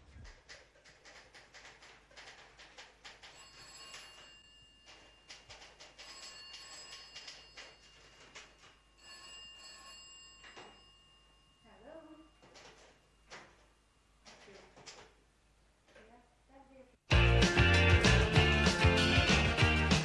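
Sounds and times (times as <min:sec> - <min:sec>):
telephone bell ringing: 0:03.2 - 0:13.6.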